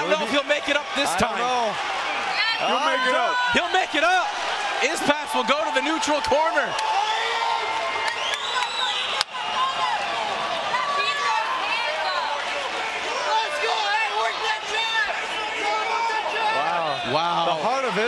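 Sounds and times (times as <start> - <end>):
crowd shouting and cheering: 0.0 - 18.0.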